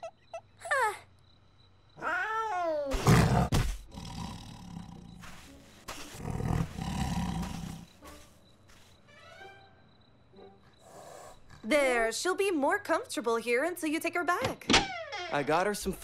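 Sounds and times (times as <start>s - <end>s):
leopard roar: 2.9s - 5.3s, 6.1s - 7.9s.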